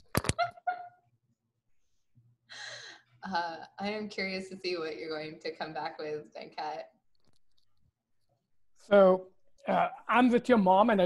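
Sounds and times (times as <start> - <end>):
person laughing: 0.2 - 1.0.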